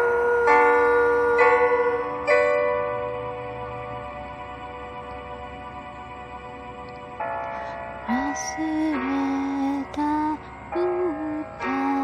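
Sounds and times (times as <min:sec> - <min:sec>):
piano chords ringing: 0:00.0 - 0:12.0.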